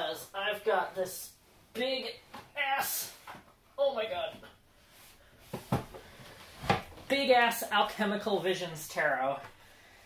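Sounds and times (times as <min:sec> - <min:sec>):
box thumping: 0:05.5 - 0:07.1.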